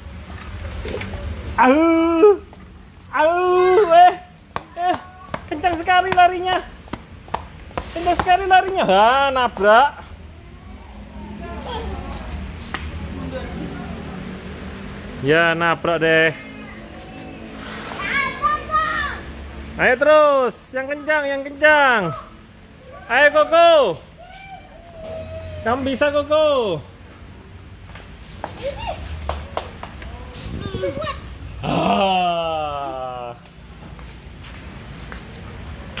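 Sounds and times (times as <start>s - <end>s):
shuffling steps on concrete: 0.0s - 3.4s, 4.1s - 10.3s, 11.5s - 13.7s, 16.7s - 18.4s, 20.9s - 31.3s, 32.7s - 36.0s
child squealing: 24.2s - 25.7s.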